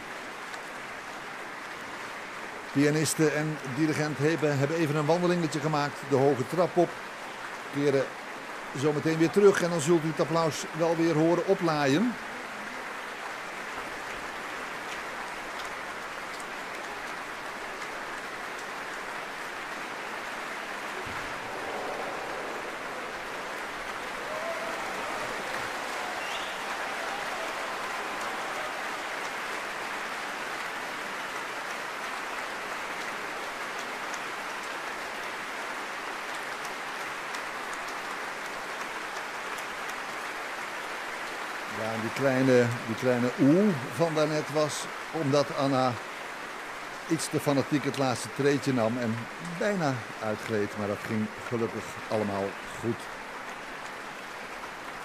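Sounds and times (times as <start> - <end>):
audience applauding: 0.0 - 6.8, 7.4 - 55.0
crowd going ooh: 20.8 - 29.9.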